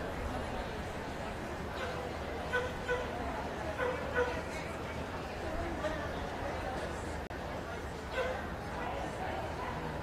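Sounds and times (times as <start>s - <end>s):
murmur of voices: 0.0s - 10.0s
dog yipping: 8.1s - 8.4s.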